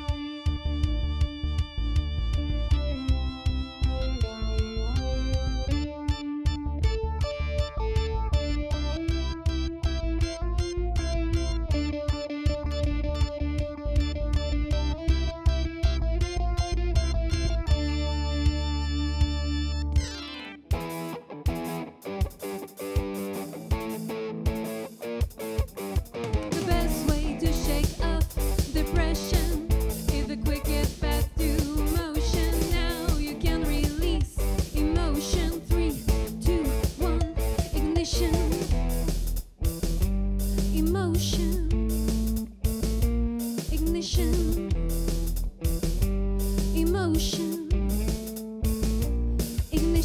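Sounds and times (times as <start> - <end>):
pop band playing live: 20.7 - 50.0.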